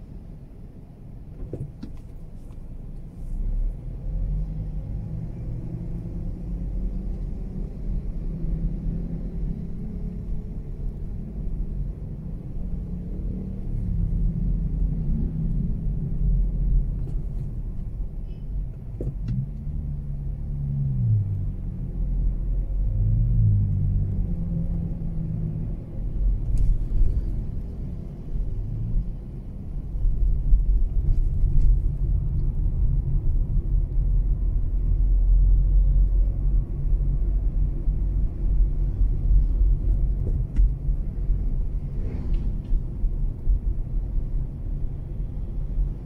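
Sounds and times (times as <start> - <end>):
car engine and road rumble: 0.0 - 46.0.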